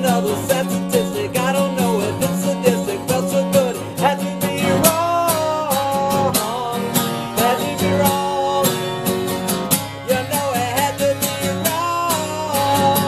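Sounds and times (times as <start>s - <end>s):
acoustic guitar strumming: 0.0s - 13.0s
man singing: 0.0s - 13.0s.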